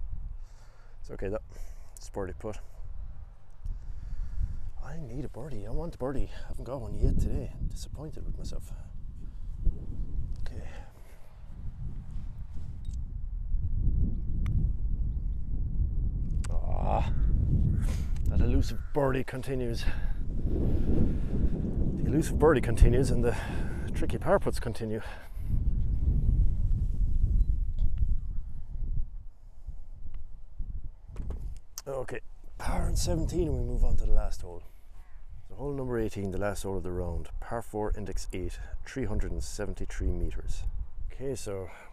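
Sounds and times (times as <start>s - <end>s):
wind rumbling on microphone: 0.0s - 41.6s.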